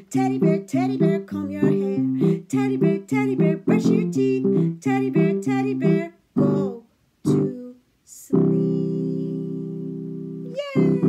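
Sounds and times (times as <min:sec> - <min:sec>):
voice gliding down in pitch: 0:10.4 - 0:11.0.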